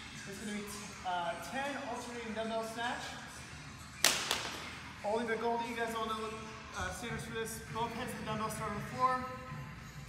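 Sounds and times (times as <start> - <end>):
plastic pipe hitting floor: 4.0 - 4.6.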